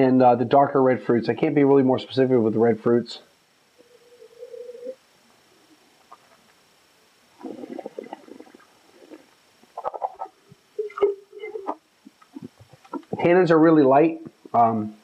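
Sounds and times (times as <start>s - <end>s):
wine swishing and gurgling in mouth: 7.4s - 9.2s
person slurping wine: 7.4s - 9.3s.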